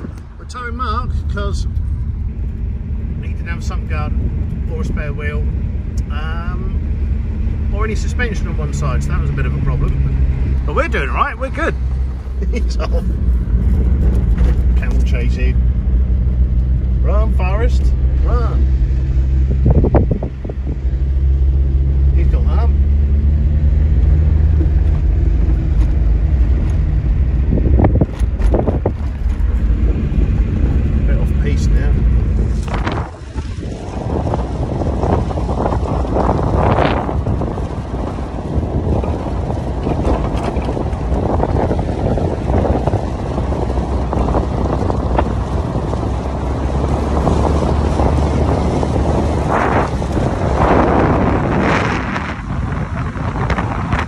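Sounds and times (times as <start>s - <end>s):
car engine droning: 0.0s - 54.0s
wind rushing over microphone: 0.0s - 54.0s.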